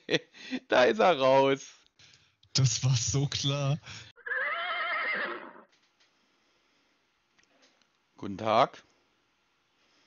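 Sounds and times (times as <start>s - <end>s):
horse whinnying: 4.2s - 5.7s.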